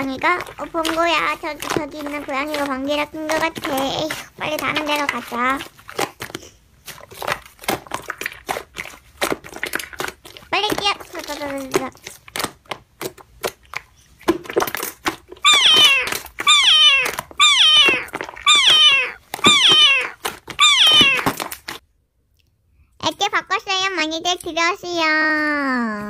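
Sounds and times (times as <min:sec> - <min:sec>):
slime squelching and popping: 0:00.0 - 0:21.8
cat meowing: 0:15.4 - 0:21.3.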